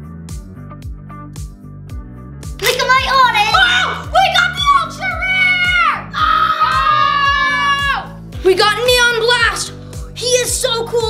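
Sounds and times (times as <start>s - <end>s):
background music with beat: 0.0s - 11.0s
boy shouting: 2.6s - 11.0s.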